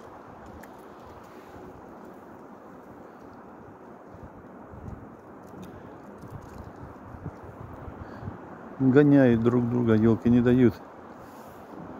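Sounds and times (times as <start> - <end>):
faint soft clicks: 0.0 - 7.8
wind on microphone: 0.0 - 11.9.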